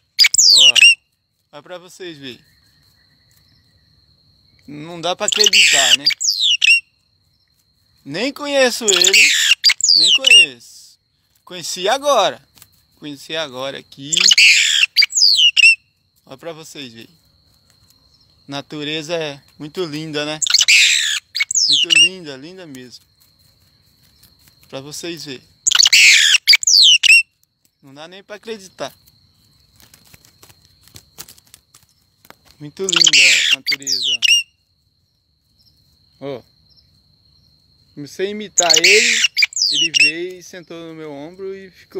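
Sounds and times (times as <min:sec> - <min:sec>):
songbird whistled call: 0:00.0 - 0:01.0, 0:05.3 - 0:06.9, 0:08.9 - 0:10.5, 0:14.1 - 0:15.8, 0:20.4 - 0:22.1, 0:25.7 - 0:27.3, 0:38.6 - 0:40.2.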